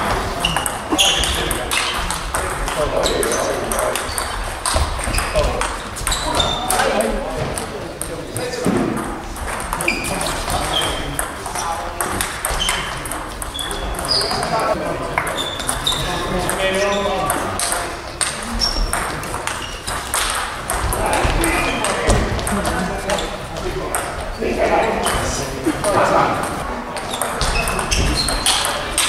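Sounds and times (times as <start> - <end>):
table tennis ball pings: 0.4 - 8.1, 9.0 - 14.3, 15.2 - 22.7, 26.4 - 29.0.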